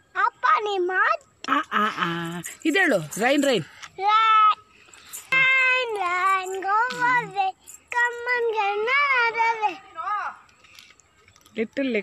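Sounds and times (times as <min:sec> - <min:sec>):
little girl singing: 0:04.0 - 0:10.3.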